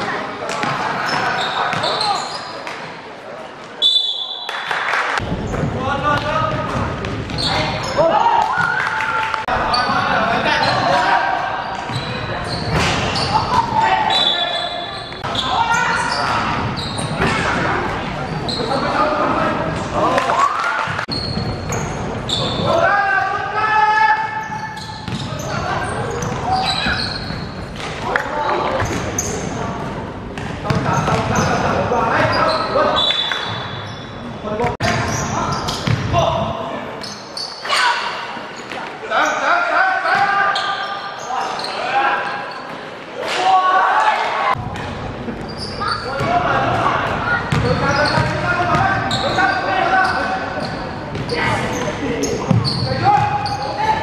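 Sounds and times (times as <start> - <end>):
basketball bouncing on wooden court: 30.7 - 31.3, 35.8 - 36.2, 47.5 - 48.9, 52.5 - 53.4
people shouting in hall: 43.2 - 44.6.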